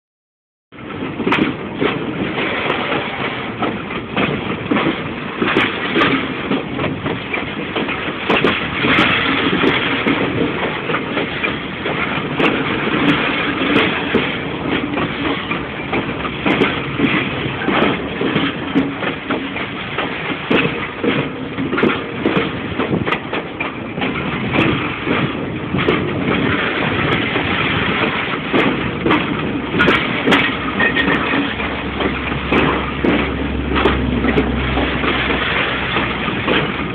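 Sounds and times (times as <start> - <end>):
clanks from wheels and couplings: 0.7 - 36.9
freight train rolling on rails: 0.7 - 36.9.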